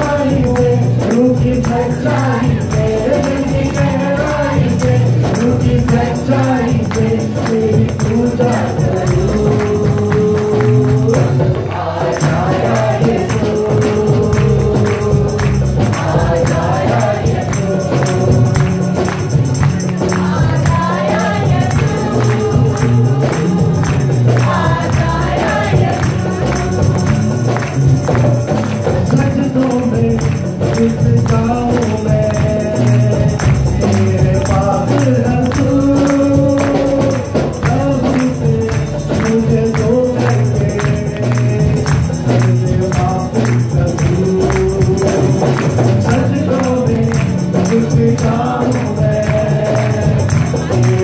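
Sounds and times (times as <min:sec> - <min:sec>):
man singing into a microphone: 0:00.0 - 0:24.5, 0:28.8 - 0:51.0
acoustic guitar: 0:00.0 - 0:51.0
bass line: 0:00.0 - 0:51.0
steady beat: 0:00.0 - 0:51.0.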